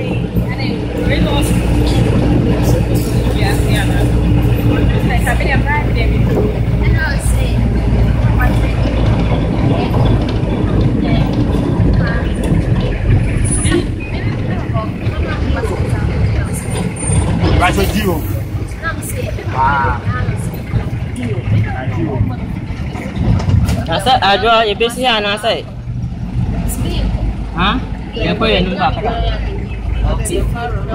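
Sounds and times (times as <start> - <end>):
minibus engine droning: 0.0 - 30.9
passengers chatting: 0.0 - 30.9
road noise: 0.0 - 30.9.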